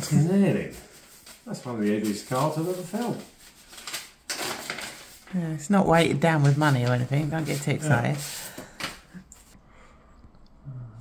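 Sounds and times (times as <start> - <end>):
paper envelope tearing open: 1.2 - 5.3.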